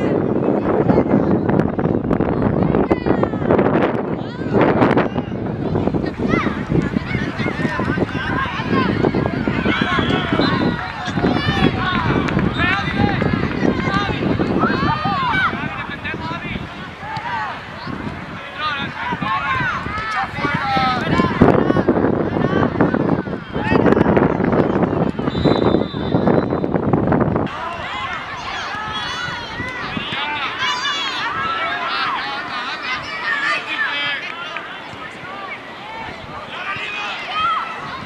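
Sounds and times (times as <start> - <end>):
children shouting and calling: 2.1 - 25.3, 27.5 - 38.0.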